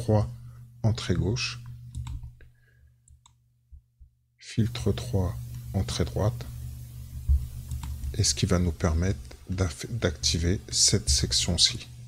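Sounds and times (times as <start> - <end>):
faint low hum: 0.0 - 12.0
computer mouse clicks: 1.9 - 2.3, 7.6 - 8.1.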